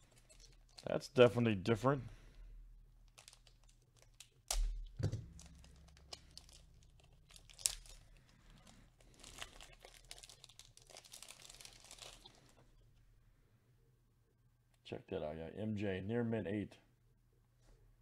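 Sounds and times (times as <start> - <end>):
plastic crinkling: 0.0 - 1.0, 3.0 - 13.0.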